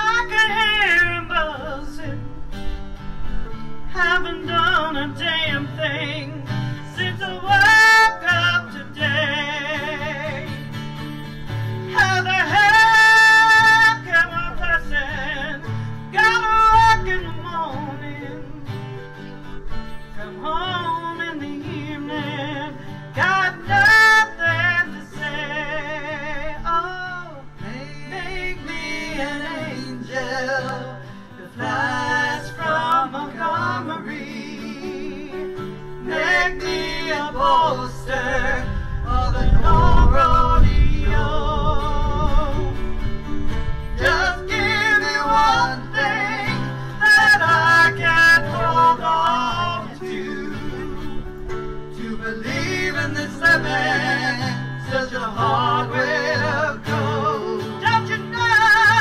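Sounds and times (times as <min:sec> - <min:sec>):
person singing with vibrato: 0:00.0 - 0:02.5, 0:03.8 - 0:10.8, 0:11.8 - 0:19.2, 0:20.0 - 0:43.0, 0:43.9 - 0:59.0
mandolin: 0:00.0 - 0:59.0
strummed acoustic guitar: 0:00.0 - 0:59.0.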